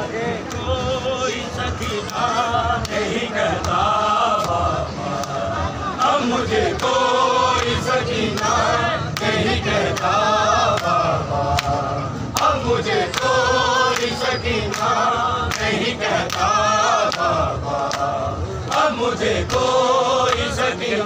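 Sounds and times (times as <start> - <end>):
men chanting in unison: 0.0 - 21.0.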